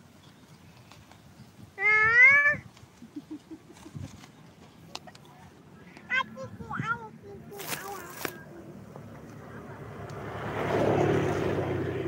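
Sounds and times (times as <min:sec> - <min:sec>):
drawn-out animal call: 0:01.8 - 0:02.7.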